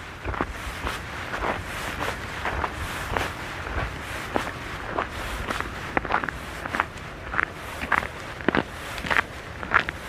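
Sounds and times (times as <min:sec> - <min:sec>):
footsteps on snow: 0:00.0 - 0:10.0.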